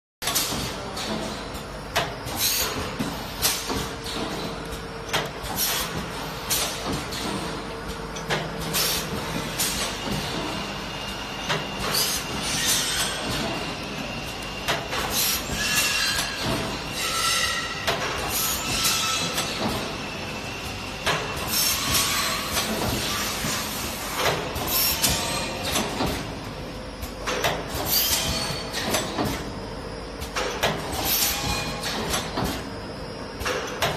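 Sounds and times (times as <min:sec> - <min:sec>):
machine clacks: 0:00.2 - 0:20.0, 0:30.2 - 0:32.7
packaging machine running: 0:02.4 - 0:29.6.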